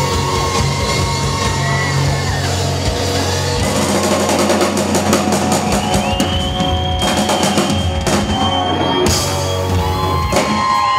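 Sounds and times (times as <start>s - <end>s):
rock band playing: 0.0s - 10.9s.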